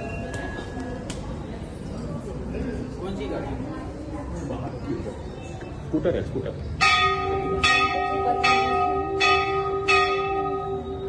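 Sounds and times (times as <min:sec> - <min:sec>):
temple bell ringing: 0:06.8 - 0:11.0.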